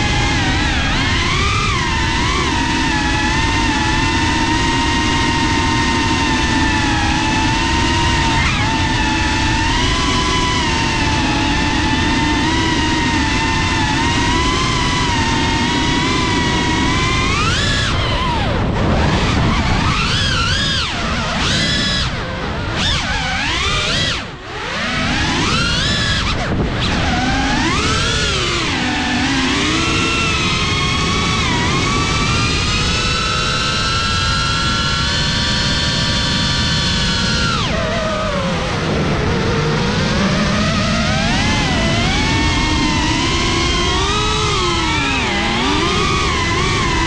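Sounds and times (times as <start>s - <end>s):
quadcopter motors whining: 0.0s - 47.0s
rushing wind: 0.0s - 47.0s.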